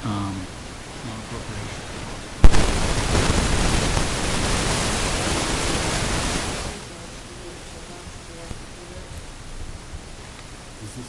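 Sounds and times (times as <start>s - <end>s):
loud steady rushing hiss: 0.0s - 11.0s.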